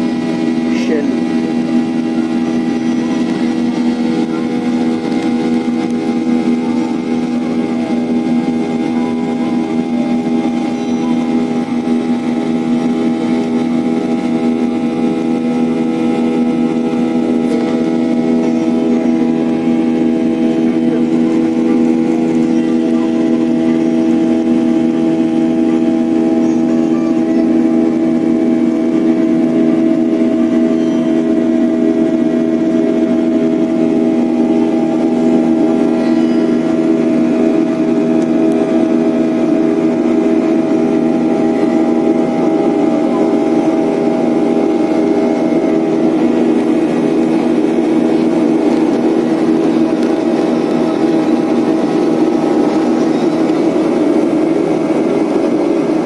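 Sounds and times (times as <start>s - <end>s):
airliner engines droning in cabin: 0.0s - 56.0s.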